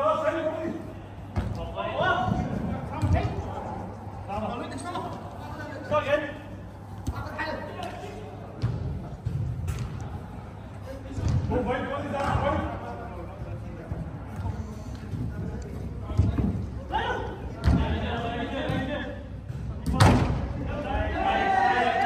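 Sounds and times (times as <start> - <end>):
players shouting in echoing hall: 20.2 - 22.0.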